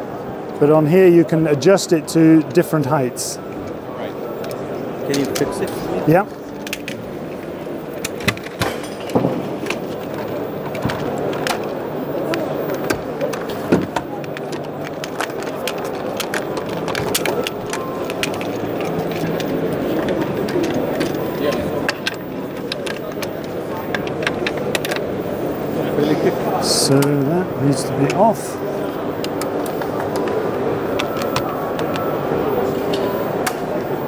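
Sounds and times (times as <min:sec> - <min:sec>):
background chatter: 0:00.0 - 0:34.0.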